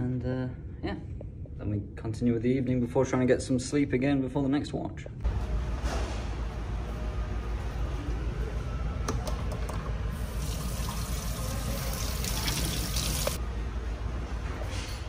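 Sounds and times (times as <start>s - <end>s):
tap water running into metal sink: 10.2s - 13.4s.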